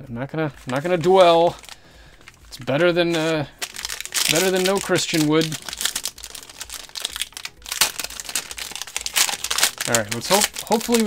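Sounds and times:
card pack wrapper crinkling: 0:00.5 - 0:11.0.

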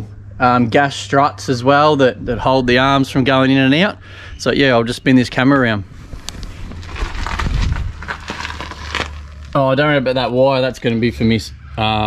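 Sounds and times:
low rumble on microphone: 0:00.0 - 0:09.8
camera handling rubbing: 0:06.1 - 0:08.3.

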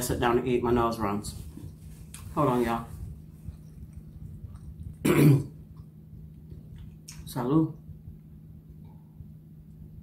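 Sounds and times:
woman coughing: 0:05.0 - 0:05.6.

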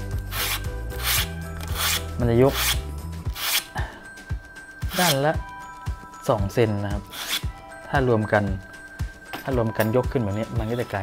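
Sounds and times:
sandpaper rubbing on foam: 0:00.3 - 0:02.8, 0:03.4 - 0:03.6, 0:07.1 - 0:07.4.

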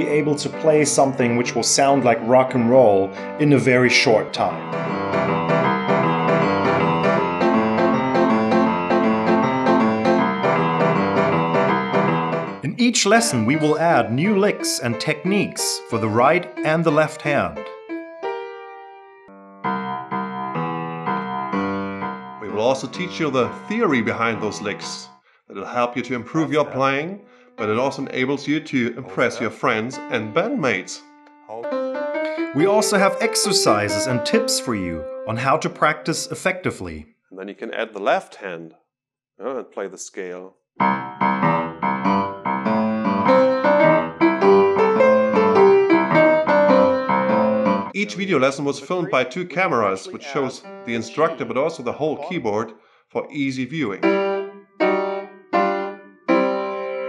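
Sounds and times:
acoustic piano chords: 0:00.0 - 0:25.2, 0:27.6 - 0:36.6, 0:40.8 - 0:52.6, 0:53.8 - 0:57.0.

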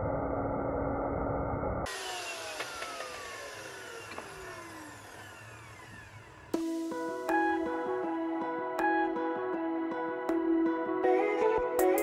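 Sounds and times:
saw motor winding down whine: 0:00.0 - 0:06.6
mitre saw cutting timber: 0:01.9 - 0:06.6.

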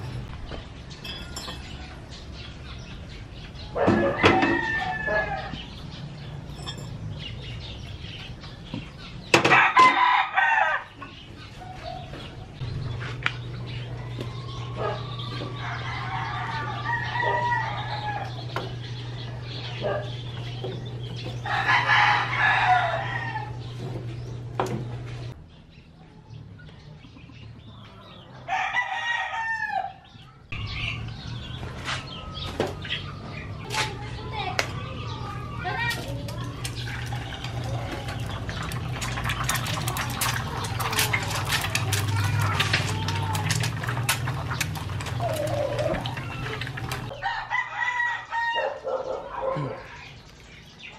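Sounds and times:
egg sizzling in hot oil: 0:36.6 - 0:47.1.

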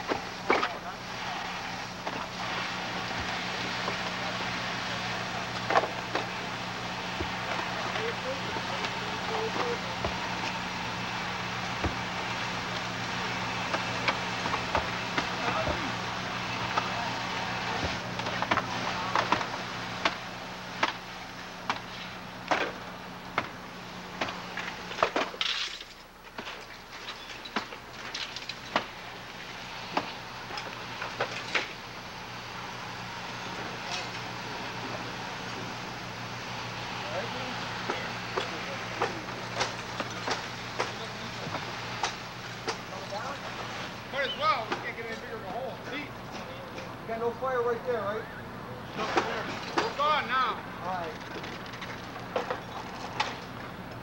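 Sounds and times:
engine hum: 0:00.0 - 0:54.0
sharp knocks and cracks: 0:20.8 - 0:21.0, 0:21.6 - 0:23.6, 0:24.2 - 0:29.0.

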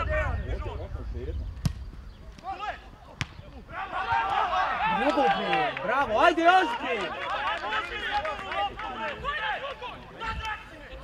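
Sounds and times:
football kicks: 0:01.6 - 0:02.4, 0:03.1 - 0:04.3
players and spectators shouting: 0:02.4 - 0:11.0.

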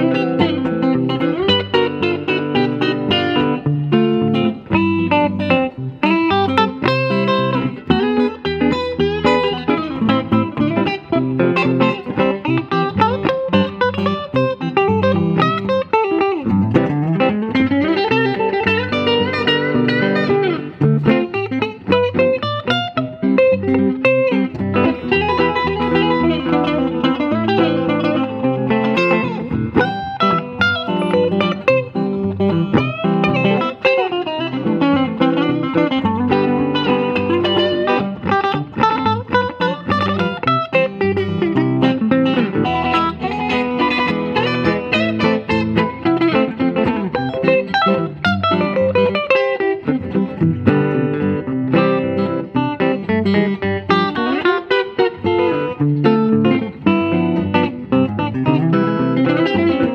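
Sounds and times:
electric guitars playing duet: 0:00.0 - 0:59.9.

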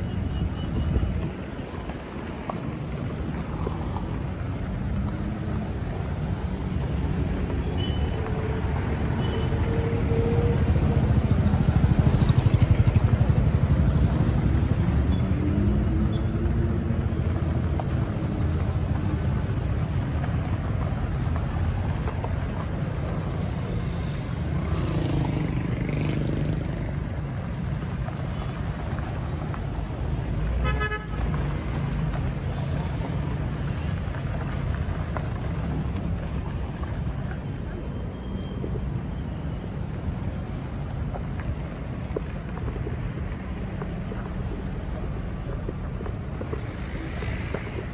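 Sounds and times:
road traffic on dirt road: 0:00.0 - 0:47.9.

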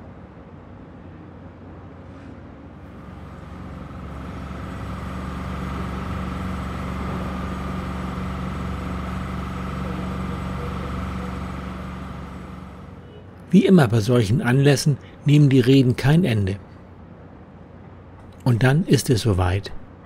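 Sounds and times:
engine humming with faint whine: 0:02.8 - 0:17.0.

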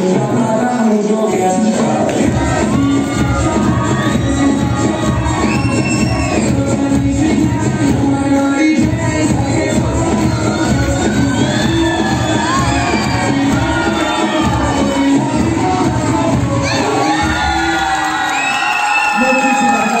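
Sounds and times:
loud dance music: 0:00.0 - 0:20.0
audience cheering and whooping: 0:02.1 - 0:06.8, 0:10.0 - 0:20.0.

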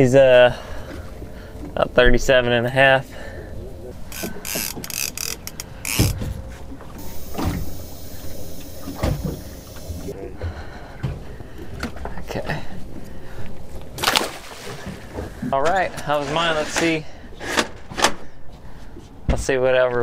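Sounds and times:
fish knocking on boat deck: 0:04.1 - 0:06.4
high hiss: 0:07.0 - 0:10.1.

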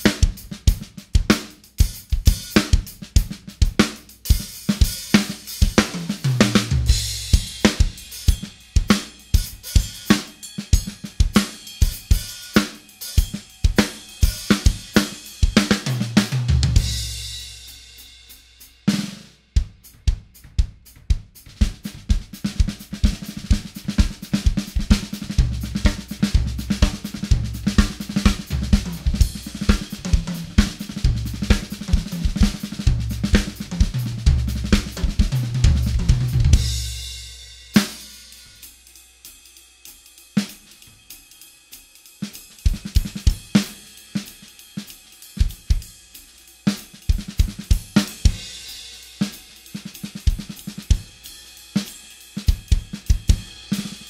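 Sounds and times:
acoustic drum kit groove: 0:00.0 - 0:54.0.

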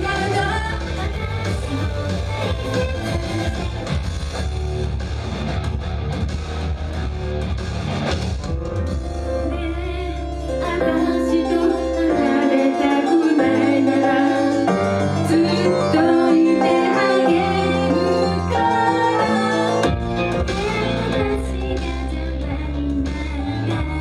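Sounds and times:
upbeat pop song over sound system: 0:00.0 - 0:24.0
female voices singing: 0:09.6 - 0:14.6, 0:15.2 - 0:19.8.

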